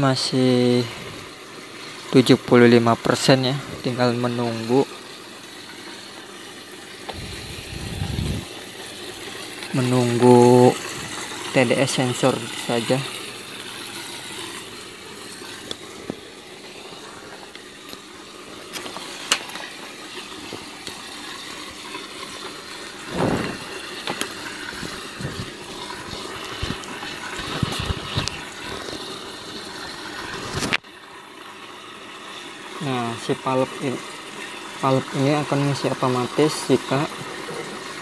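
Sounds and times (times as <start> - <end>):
water running and splashing: 0.0 - 38.0.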